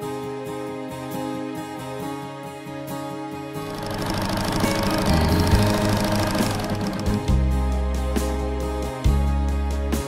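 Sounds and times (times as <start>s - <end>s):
background music: 0.0s - 10.0s
sewing machine stitching fabric: 3.6s - 7.3s.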